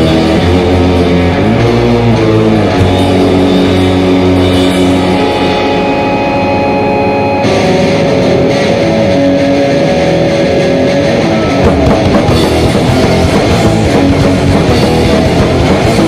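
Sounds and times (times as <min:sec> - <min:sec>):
distorted electric guitar chords: 0:00.0 - 0:16.0.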